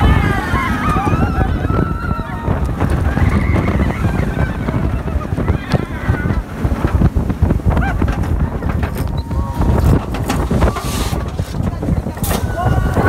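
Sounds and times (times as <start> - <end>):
riders screaming: 0.0 - 6.4, 12.3 - 13.0
roller coaster train rumbling on track: 0.0 - 13.0
wind rush on microphone: 0.0 - 13.0.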